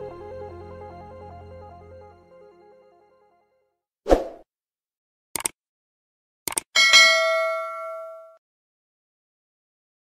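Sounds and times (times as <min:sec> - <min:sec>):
notification bell ding: 0:06.8 - 0:08.4.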